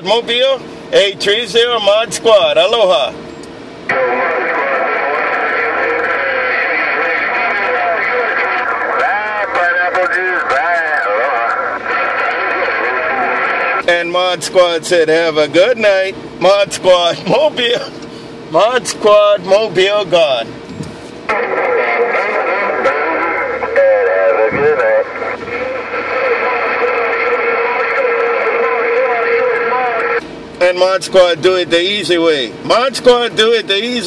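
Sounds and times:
clear voice over radio: 3.9s - 13.9s, 21.3s - 30.2s
faint voice over radio: 3.9s - 13.9s, 21.3s - 30.2s
radio hiss: 3.9s - 14.7s, 19.1s - 32.0s.

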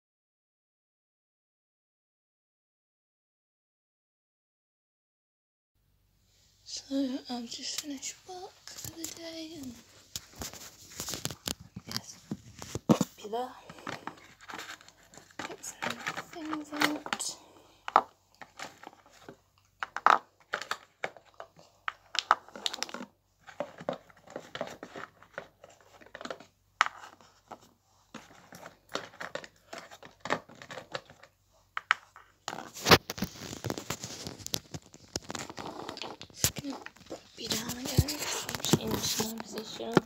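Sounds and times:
packaging crinkling: 8.6s - 40.0s
small objects clicking and knocking: 10.1s - 40.0s.

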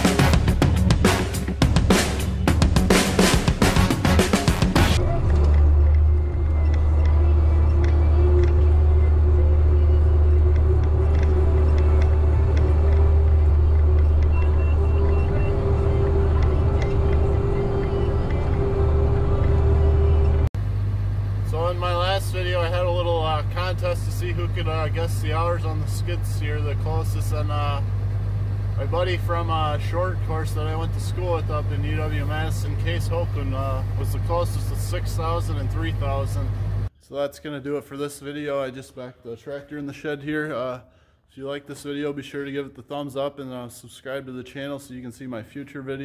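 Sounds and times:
background music with drum beat: 0.0s - 5.0s
tractor diesel engine droning: 0.0s - 36.9s
man talking: 21.4s - 27.9s, 28.8s - 46.0s.

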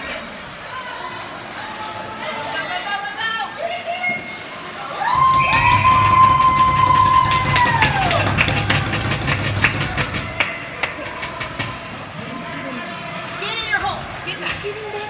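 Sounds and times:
crowd cheering: 0.0s - 14.9s
sharp knocks: 5.2s - 11.8s.

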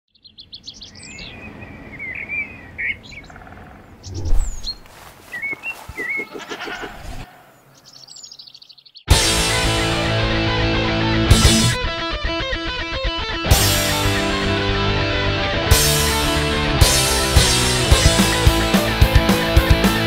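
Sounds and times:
birds chirping and trilling: 0.1s - 9.1s
electric guitar rock music: 9.1s - 20.0s.

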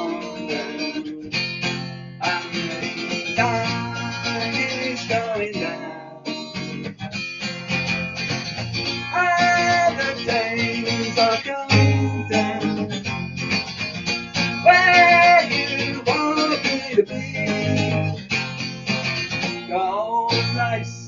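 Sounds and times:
acoustic guitar strummed and picked: 0.0s - 21.0s.

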